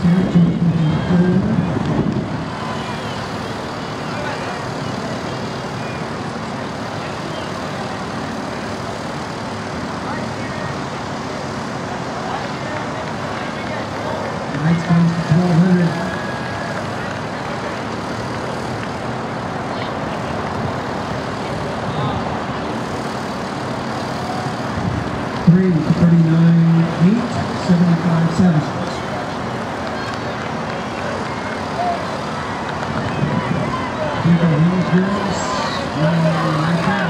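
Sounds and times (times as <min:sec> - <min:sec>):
outdoor background noise: 0:00.0 - 0:37.0.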